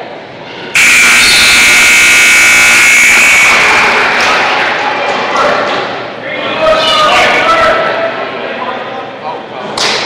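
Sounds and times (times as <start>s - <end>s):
scoreboard buzzer: 0.8s - 4.7s.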